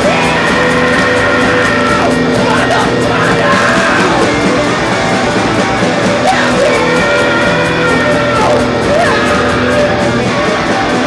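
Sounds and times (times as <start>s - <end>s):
live rock band: 0.0s - 11.0s
sliding guitar notes: 0.0s - 11.0s.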